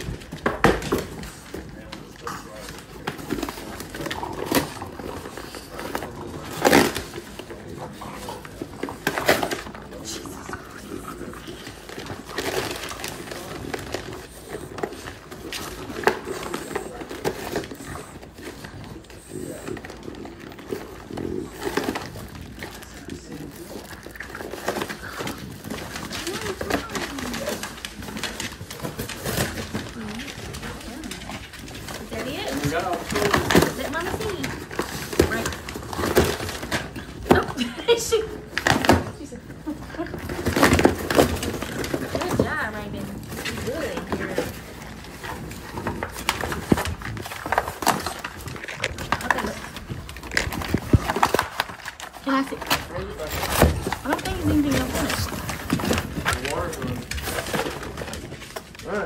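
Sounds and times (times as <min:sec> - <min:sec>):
dogs chewing cardboard: 0:00.0 - 0:59.0
cardboard ripping: 0:40.0 - 0:59.0.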